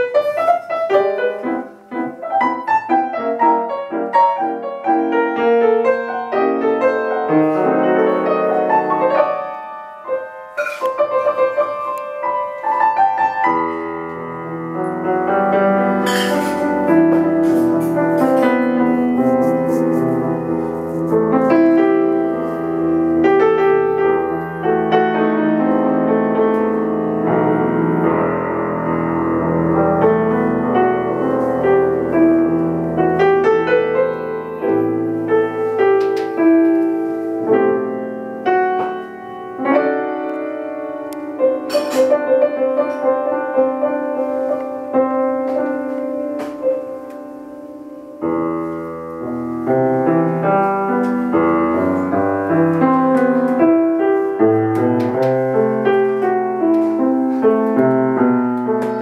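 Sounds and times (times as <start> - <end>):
piano playing: 0.0 - 59.0.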